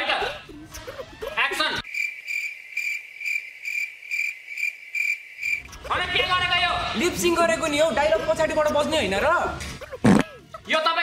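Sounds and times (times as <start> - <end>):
cricket chirping: 1.8 - 5.9.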